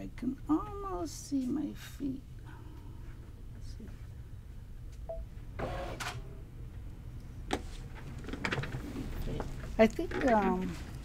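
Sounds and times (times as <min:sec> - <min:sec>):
low steady hum: 0:00.0 - 0:11.0
short beep: 0:05.1 - 0:05.3.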